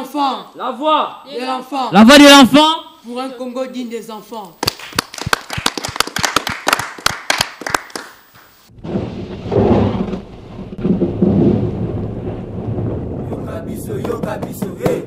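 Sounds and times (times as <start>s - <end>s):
low thunder rumble: 8.7s - 14.6s
thunder crackles: 8.7s - 15.0s.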